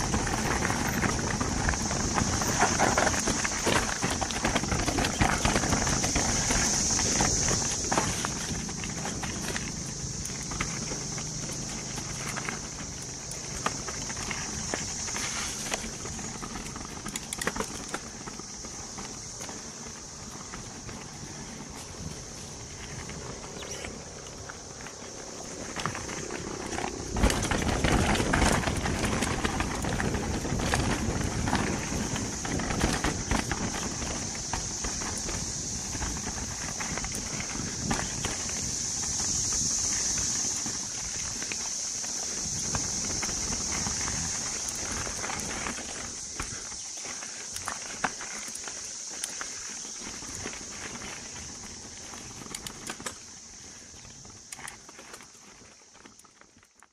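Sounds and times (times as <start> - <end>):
bike frame rattling: 0.0 - 56.8
bike tyres crunching over rock: 0.0 - 56.9.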